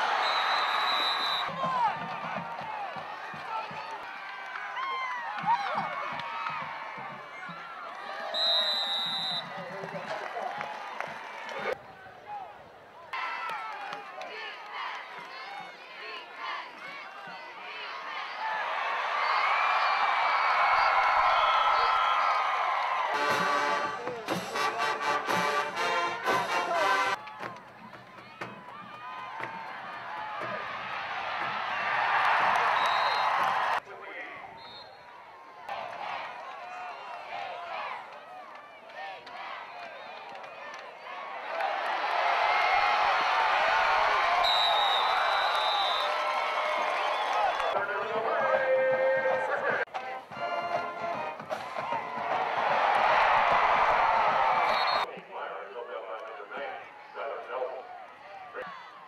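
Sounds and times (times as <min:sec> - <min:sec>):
stadium crowd cheering and shouting: 0:00.0 - 0:59.0
music: 0:23.1 - 0:29.7, 0:49.9 - 0:52.4.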